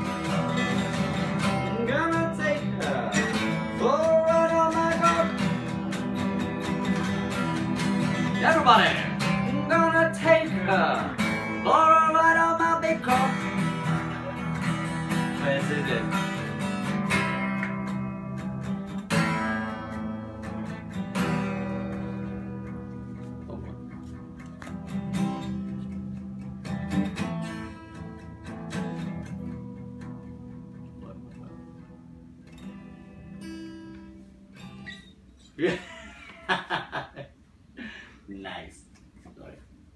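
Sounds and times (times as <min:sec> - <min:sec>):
acoustic guitar strumming chords: 0:00.0 - 0:35.3
man laughing: 0:35.6 - 0:38.2.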